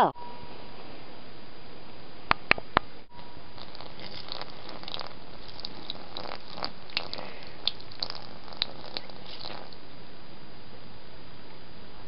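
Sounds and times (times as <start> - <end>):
water dripping on toy: 3.6 - 9.8.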